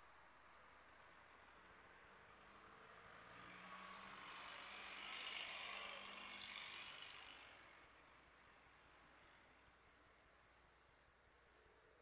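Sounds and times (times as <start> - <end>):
faint radio hiss: 0.0 - 12.0.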